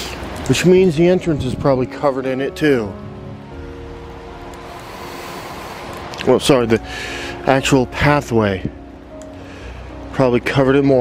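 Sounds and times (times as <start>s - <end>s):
rain hissing: 0.0s - 10.5s
running runoff water: 0.0s - 11.0s
soft held musical notes: 0.0s - 11.0s.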